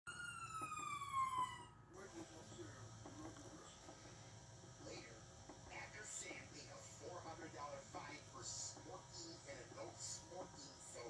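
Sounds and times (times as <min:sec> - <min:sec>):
vcr whine sliding down in pitch: 0:00.1 - 0:01.8.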